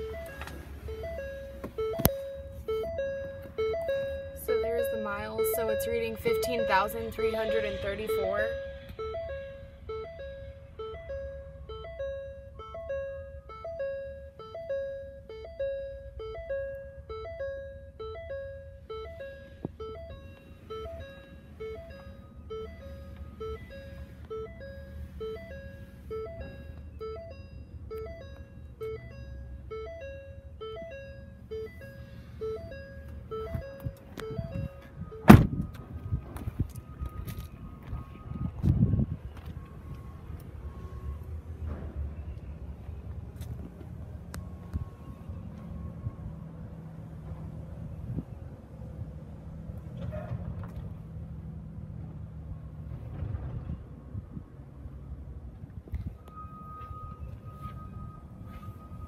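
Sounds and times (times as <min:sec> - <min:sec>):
van door shutting: 0:33.5 - 0:35.8
two-note warning chime: 0:56.3 - 0:59.0.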